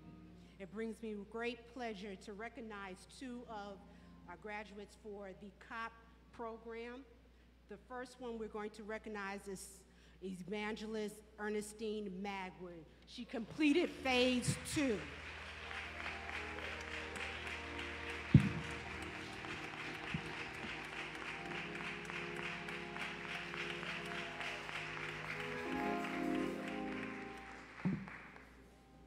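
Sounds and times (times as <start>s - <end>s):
congregation applauding: 13.6s - 29.0s
church keyboard chords: 13.7s - 29.0s.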